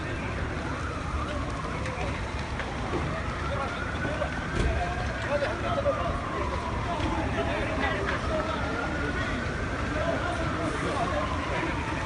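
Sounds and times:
distant siren wailing: 0.0 - 12.0.

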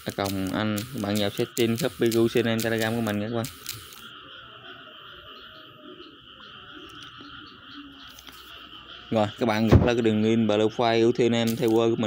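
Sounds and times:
chorus of calling animals: 0.0 - 12.0.

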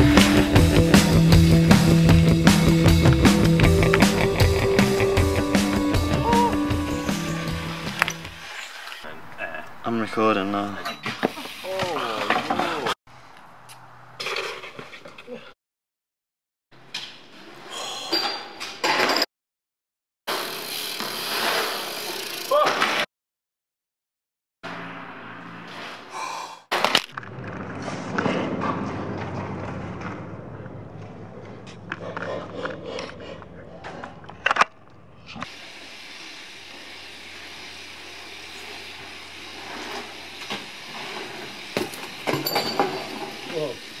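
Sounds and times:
bikes rolling on concrete: 0.0 - 15.5, 20.3 - 23.1, 24.7 - 26.2, 26.8 - 44.0.

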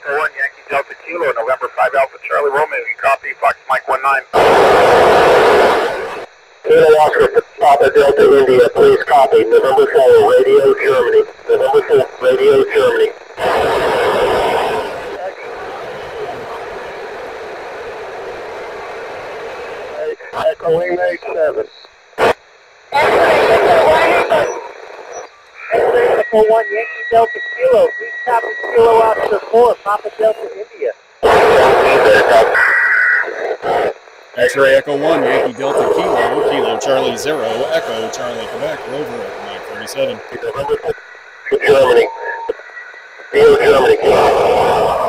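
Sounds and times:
garbled radio voices: 0.0 - 19.1, 19.7 - 45.0
radio hiss: 0.0 - 45.0
steady whistle tone: 24.3 - 30.5, 35.6 - 45.0.

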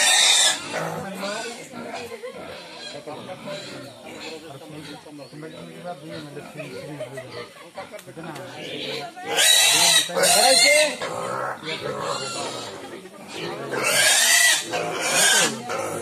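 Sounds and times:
piglets squealing: 0.0 - 1.7, 8.6 - 16.0.

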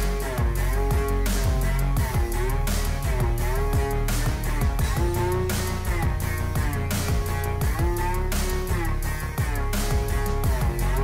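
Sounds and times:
background music with guitar: 0.0 - 11.0.

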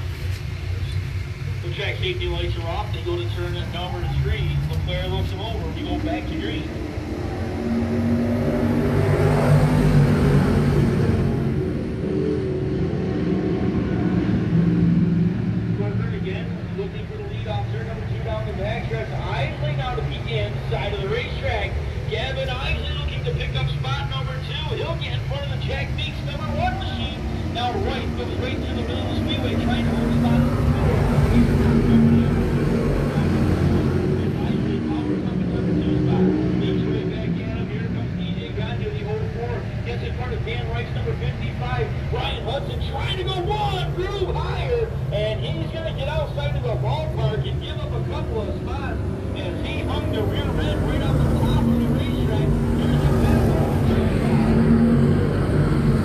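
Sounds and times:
race car engines droning: 0.0 - 56.0.

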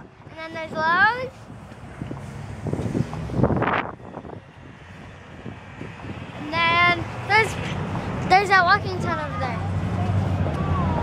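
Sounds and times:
parking lot background noise: 0.0 - 11.0
rush of noise: 0.0 - 11.0.

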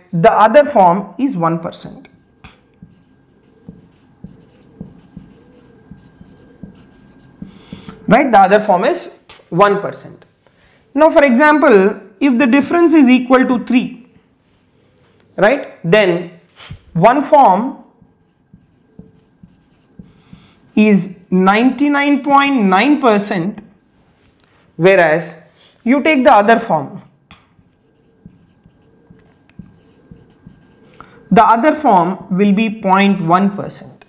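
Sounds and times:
marker pen writing on whiteboard: 1.8 - 8.2, 17.1 - 21.9, 26.6 - 31.3.

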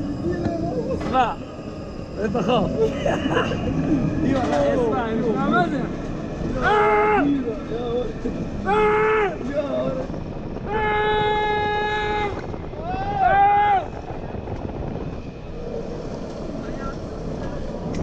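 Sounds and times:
roller coaster climbing lift hill: 0.0 - 18.0
riders calling out whoo cries: 6.5 - 7.5, 8.6 - 9.9, 10.6 - 14.0.

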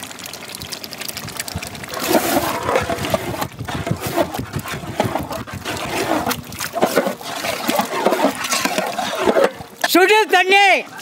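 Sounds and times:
wet squelching of thick sauce: 0.6 - 11.0
ladle scraping metal pot: 1.8 - 11.0.

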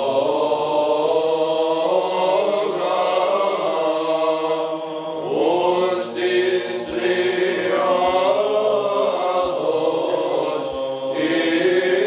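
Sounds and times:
voices chanting long phrases: 0.0 - 12.0.

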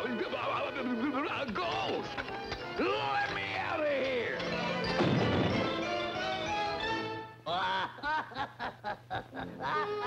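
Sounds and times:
orchestral cartoon music: 0.0 - 7.4
body smashing through wooden door: 5.0 - 5.7.

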